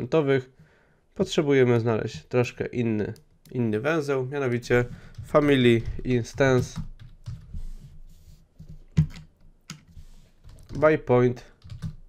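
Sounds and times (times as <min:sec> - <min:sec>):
computer keyboard typing: 0:05.0 - 0:07.5, 0:08.9 - 0:10.9, 0:11.5 - 0:12.0.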